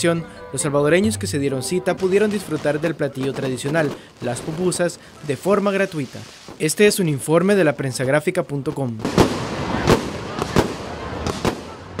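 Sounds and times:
fireworks bangs: 2.0s - 6.7s, 9.0s - 12.0s
fireworks crackling hiss: 2.6s - 7.2s.

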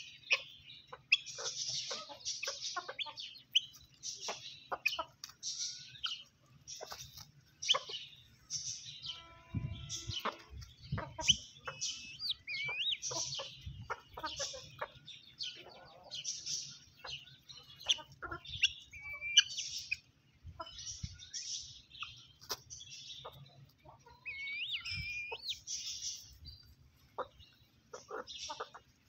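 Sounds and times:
hens and rooster clucking: 0.0s - 29.0s
long held bird call: 11.3s - 13.4s, 24.1s - 26.0s.

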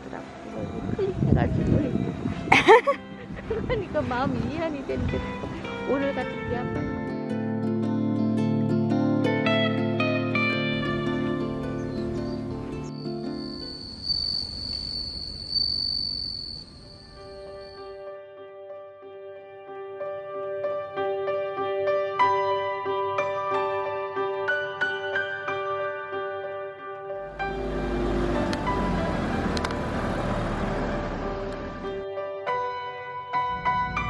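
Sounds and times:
soft background music: 0.0s - 14.0s, 17.2s - 34.0s
crickets trilling: 11.7s - 18.0s.

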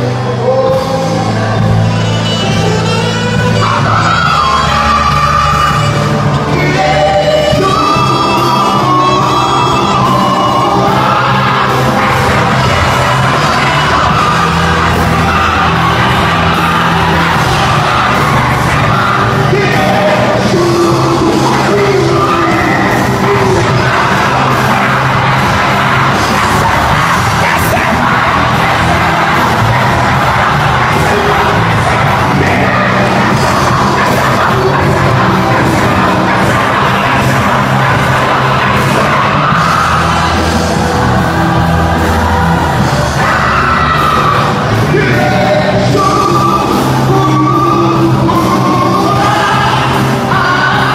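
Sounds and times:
amplified worship band: 0.0s - 50.9s
bass line: 0.0s - 50.9s
person singing into microphone: 0.0s - 50.9s.

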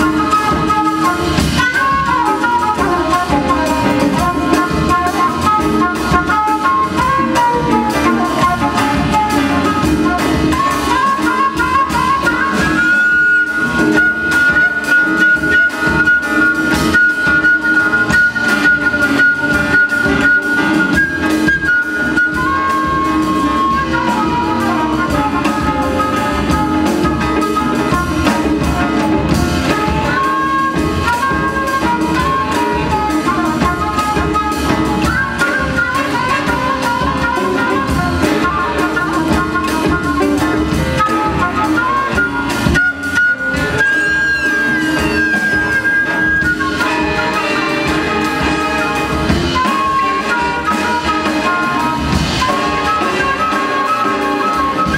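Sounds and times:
drums: 0.0s - 54.9s
flute holding high note: 0.0s - 54.9s
guitar: 0.0s - 54.9s
jazz big band playing: 0.0s - 54.9s.

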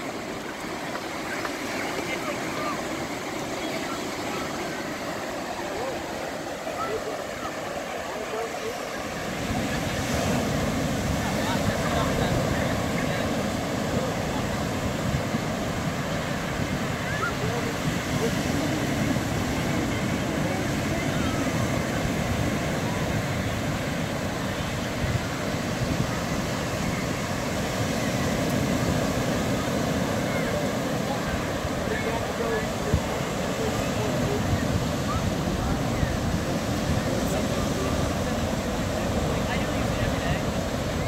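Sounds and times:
ocean surf washing onto beach: 0.0s - 41.0s
wind rumbling on microphone: 9.2s - 41.0s.

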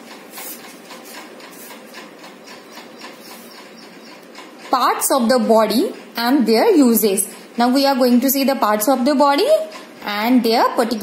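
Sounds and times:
rapid rhythmic machine clatter: 0.0s - 11.0s.

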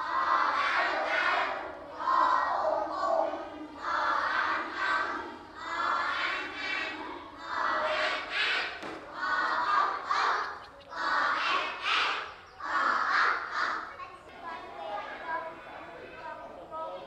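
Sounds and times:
children chanting in unison: 0.0s - 17.0s.

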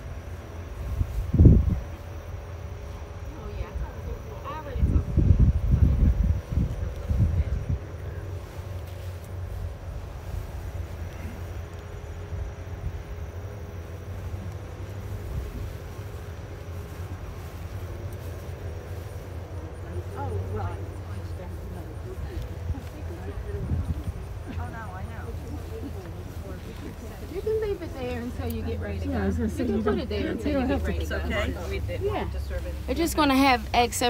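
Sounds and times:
distant engines droning: 0.0s - 34.0s
faint voices: 0.0s - 34.0s
wind buffeting microphone: 0.0s - 34.0s.

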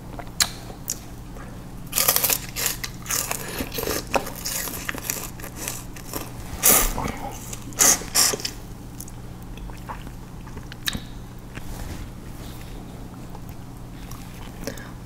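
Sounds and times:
steady low hum: 0.0s - 15.0s
crunchy chewing of sugarcane: 1.9s - 14.9s.

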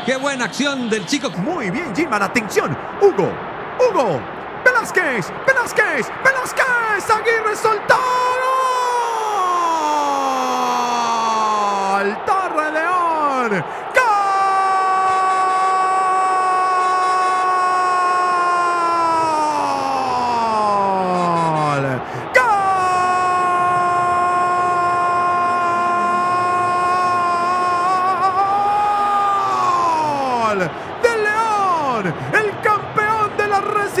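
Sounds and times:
commentator's long goal cry: 13.5s - 32.9s.

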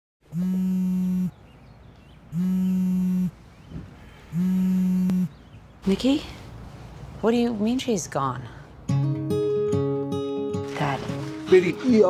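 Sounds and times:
phone vibrating on hard surface: 0.3s - 1.4s, 2.4s - 3.4s, 4.3s - 5.3s.

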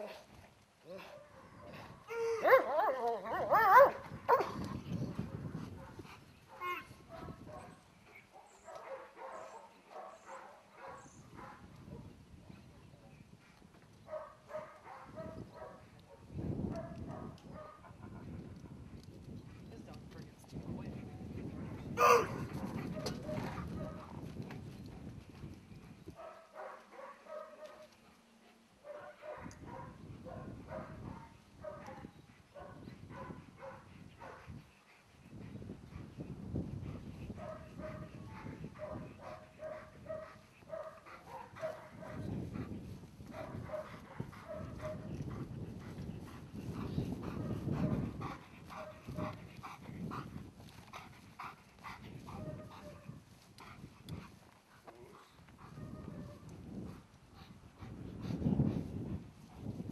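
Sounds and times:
wind rumbling on microphone: 0.0s - 28.0s, 28.8s - 59.9s
dog barking: 2.4s - 4.5s, 8.4s - 11.6s, 14.1s - 17.9s, 22.0s - 24.0s, 26.2s - 27.8s, 28.8s - 32.0s, 32.6s - 34.4s, 37.4s - 42.3s, 43.3s - 45.1s, 52.4s - 53.0s, 55.7s - 56.4s.

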